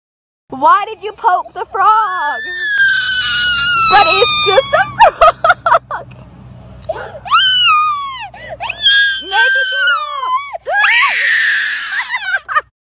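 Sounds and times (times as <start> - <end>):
boy screaming and wailing: 2.2 - 5.0, 7.2 - 12.6.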